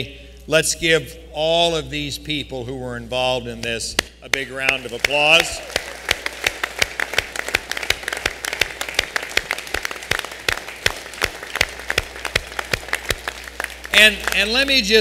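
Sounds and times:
loud close claps: 0:03.6 - 0:15.0
crowd applauding: 0:04.6 - 0:15.0.

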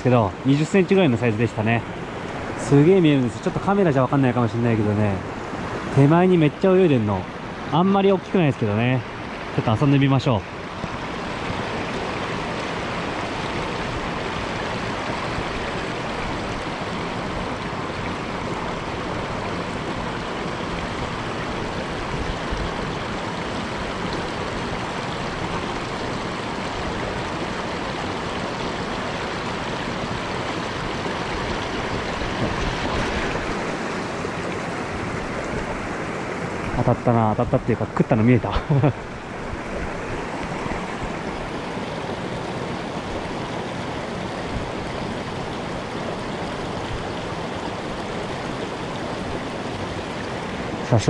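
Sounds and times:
stream rushing over rocks: 0:00.0 - 0:51.0.

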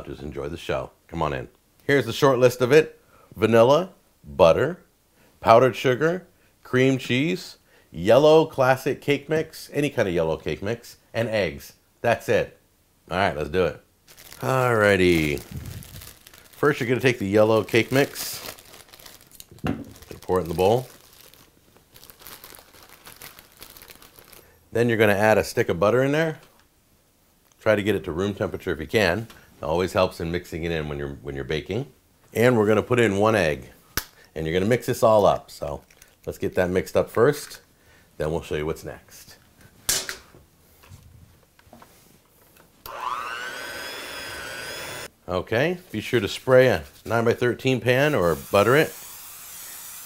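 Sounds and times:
plastic bag crinkling: 0:14.0 - 0:24.6, 0:35.6 - 0:36.3
electric hand mixer whine: 0:42.9 - 0:45.1.

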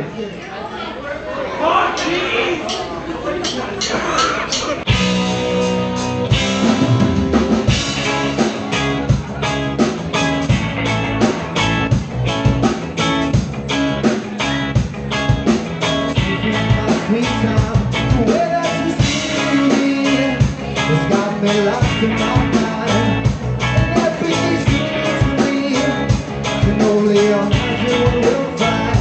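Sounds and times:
drum kit beat: 0:02.7 - 0:29.0
bass guitar: 0:04.7 - 0:29.0
electric guitars: 0:04.8 - 0:29.0.

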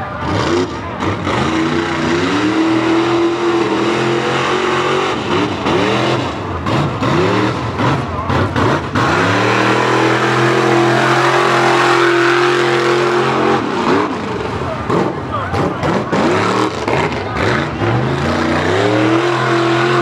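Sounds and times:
truck engine revving: 0:00.0 - 0:20.0.

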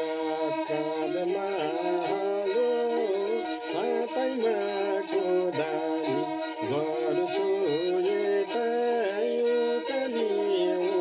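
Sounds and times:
bowed string instrument: 0:00.0 - 0:11.0
man singing folk song: 0:00.0 - 0:11.0.

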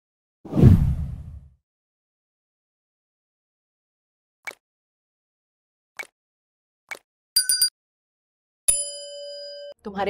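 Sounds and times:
low whoosh sound effect: 0:00.5 - 0:01.5.

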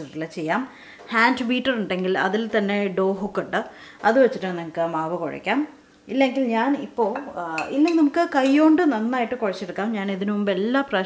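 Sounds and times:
woman speaking: 0:00.0 - 0:11.0
metal spoon clinking ceramic bowl: 0:07.2 - 0:08.7.

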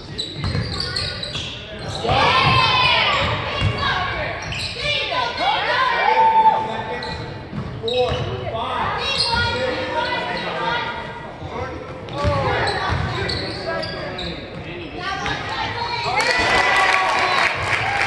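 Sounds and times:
shouts echoing in hall: 0:02.0 - 0:07.0, 0:15.4 - 0:18.0.

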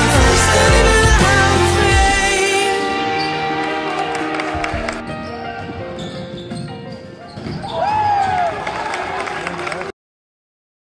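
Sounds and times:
backing music: 0:00.0 - 0:06.9
loud shout: 0:07.7 - 0:09.8.

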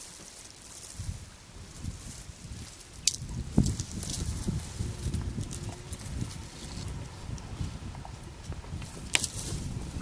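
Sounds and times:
constant low rumbling: 0:00.0 - 0:10.0
rustling and crackling foliage: 0:00.0 - 0:10.0
sharp twig cracks: 0:03.0 - 0:04.2
elephant tearing at branches: 0:09.0 - 0:09.7.

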